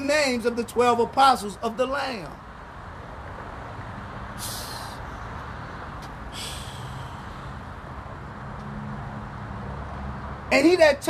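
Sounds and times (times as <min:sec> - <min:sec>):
vehicle engine rumbling: 0:00.0 - 0:10.8
short hiss: 0:04.4 - 0:05.0.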